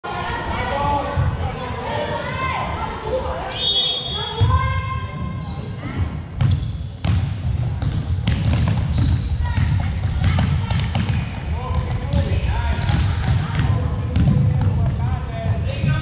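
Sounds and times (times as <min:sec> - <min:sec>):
basketball bouncing on hardwood floor: 0:07.8 - 0:11.2, 0:12.1 - 0:14.9.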